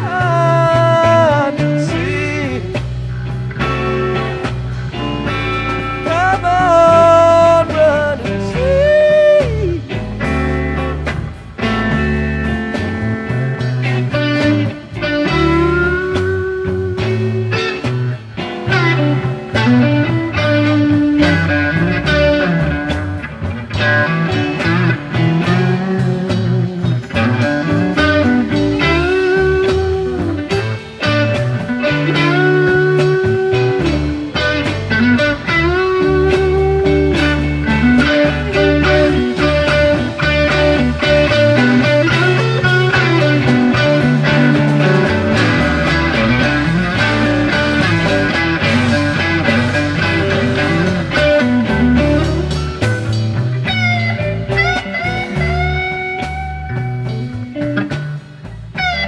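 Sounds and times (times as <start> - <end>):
bass and drums: 0.0 - 59.0
electric guitar solo: 0.0 - 59.0.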